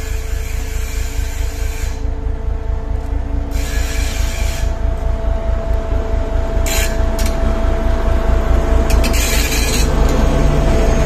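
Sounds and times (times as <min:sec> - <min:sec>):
diesel locomotive engine rumble: 0:00.0 - 0:11.0.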